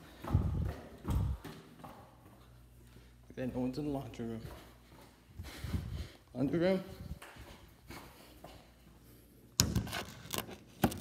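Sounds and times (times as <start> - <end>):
dull low thumps on microphone: 0.2 - 1.4.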